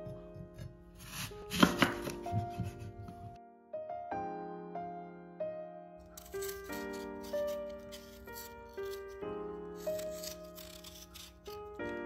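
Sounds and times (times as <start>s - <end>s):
knife crunching through apple: 1.0s - 2.6s, 6.0s - 12.0s
knife knocking on wooden board: 1.5s - 3.4s.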